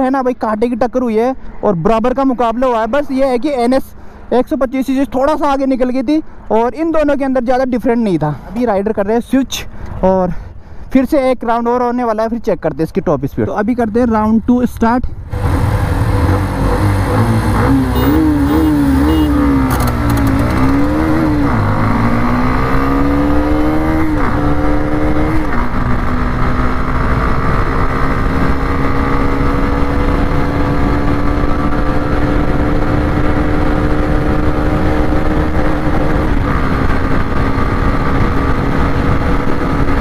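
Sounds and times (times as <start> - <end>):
motorcycle engine at full throttle: 15.3 - 40.0.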